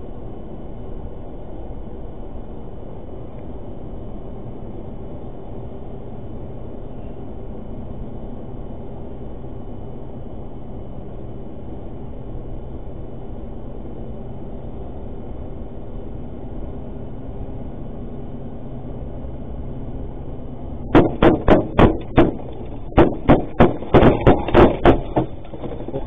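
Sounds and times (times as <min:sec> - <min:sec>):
road noise inside vehicle: 0:00.0 - 0:26.0
gunshots striking vehicle: 0:20.9 - 0:26.0.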